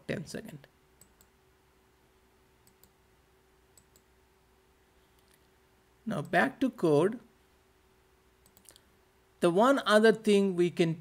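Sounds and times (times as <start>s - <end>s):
computer mouse clicks: 1.0s - 1.4s, 2.6s - 3.0s, 3.7s - 4.1s, 8.4s - 8.9s.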